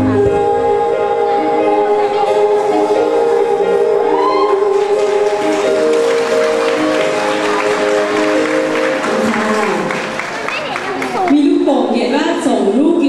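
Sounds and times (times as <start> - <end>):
woman singing ballad: 0.0 - 6.0
sustained backing chords: 0.0 - 10.5
audience applause: 4.5 - 11.5.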